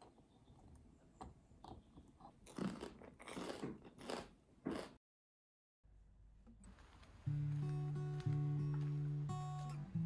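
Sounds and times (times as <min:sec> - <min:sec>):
toast crunching being chewed: 0:02.2 - 0:05.0.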